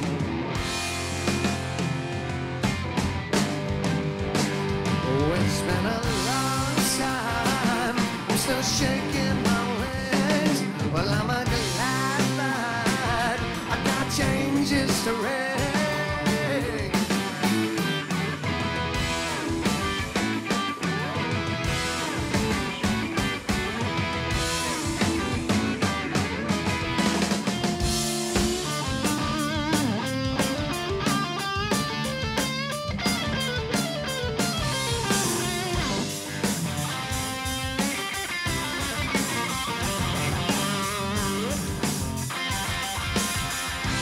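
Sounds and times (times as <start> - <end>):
electric guitar bent notes: 0.0 - 44.0
steady drumming: 0.0 - 44.0.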